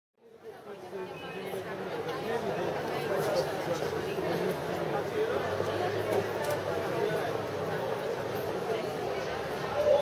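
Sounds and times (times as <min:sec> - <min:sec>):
crowd chatter: 0:00.2 - 0:10.0.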